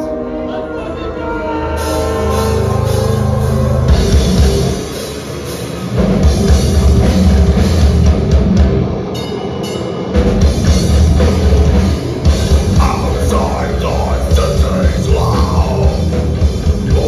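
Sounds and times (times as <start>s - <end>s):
live metal band playing: 0.0s - 17.0s.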